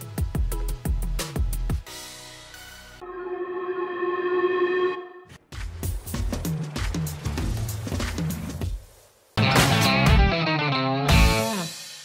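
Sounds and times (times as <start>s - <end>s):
beat with deep bass and drums: 0.0s - 1.9s, 5.5s - 8.8s
held synth chord: 3.0s - 5.3s.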